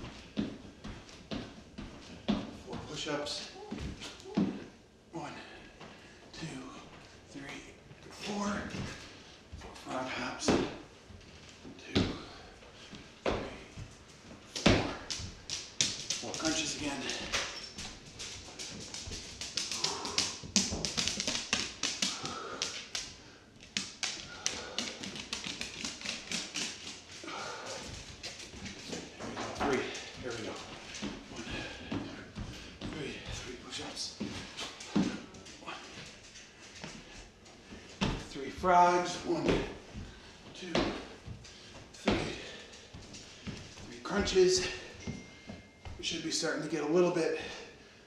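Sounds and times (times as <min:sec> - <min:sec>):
taps and clicks on wooden floor: 0:14.9 - 0:27.0.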